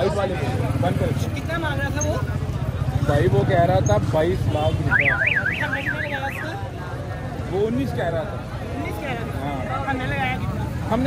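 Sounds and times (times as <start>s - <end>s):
crowd noise: 0.0s - 11.0s
siren-like warbling tone: 4.9s - 6.6s.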